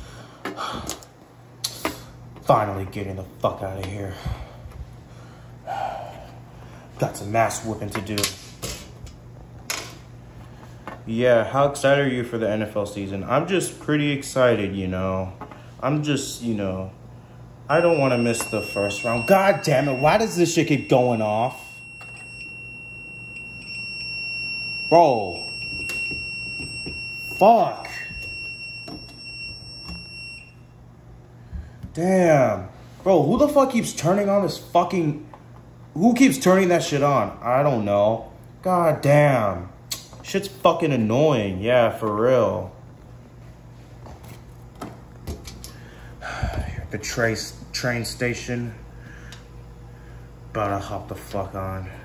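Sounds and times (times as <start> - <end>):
fire alarm tone: 17.7 - 30.8.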